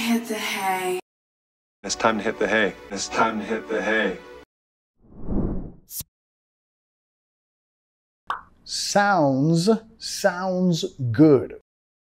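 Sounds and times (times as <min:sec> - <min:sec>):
transition swoosh: 0:05.0 - 0:06.0.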